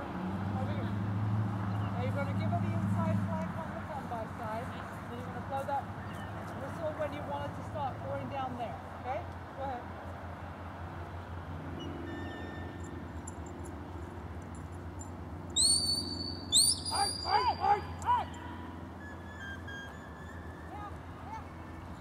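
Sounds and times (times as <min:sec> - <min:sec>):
shepherd's whistle signals: 0:15.6 - 0:18.4.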